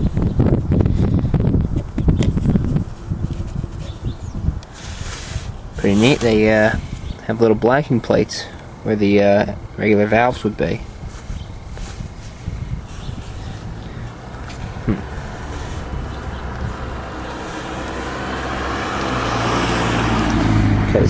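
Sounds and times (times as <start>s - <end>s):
vehicle engine running: 8.6s - 21.0s.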